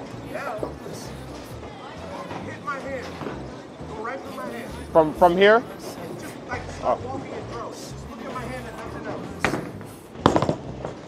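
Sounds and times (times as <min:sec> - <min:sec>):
bowling alley din: 0:00.0 - 0:11.0
bowling ball thud: 0:09.4 - 0:11.0.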